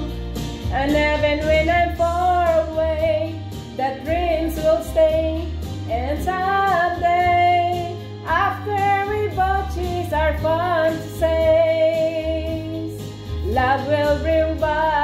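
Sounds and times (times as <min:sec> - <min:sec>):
instrumental backing with bass: 0:00.0 - 0:15.0
woman singing a slow ballad: 0:00.0 - 0:15.0.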